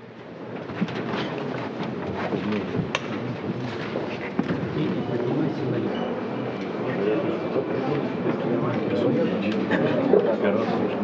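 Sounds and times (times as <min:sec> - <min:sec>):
faint voices murmuring: 0:02.1 - 0:11.0.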